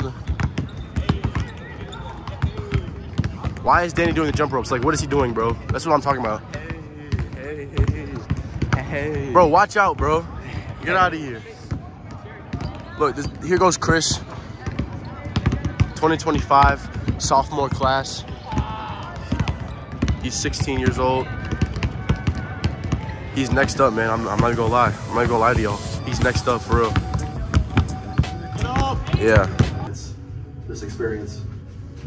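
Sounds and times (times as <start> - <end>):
basketballs bouncing on hardwood: 0.0 - 10.8, 11.7 - 25.4, 26.1 - 29.9.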